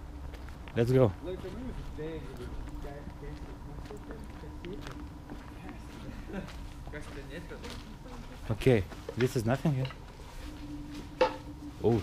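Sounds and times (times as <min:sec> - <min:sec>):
faint steady hum: 0:00.0 - 0:12.0
footsteps crunching over rubble: 0:00.0 - 0:12.0.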